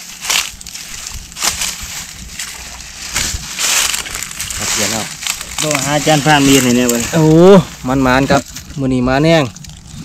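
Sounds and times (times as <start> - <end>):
dry leaves crunching underfoot: 0.0 - 10.0.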